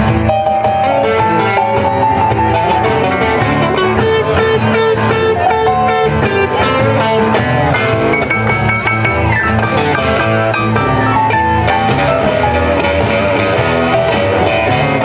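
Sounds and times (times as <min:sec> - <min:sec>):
electric guitar: 0:00.0 - 0:15.0
live blues band playing: 0:00.0 - 0:15.0.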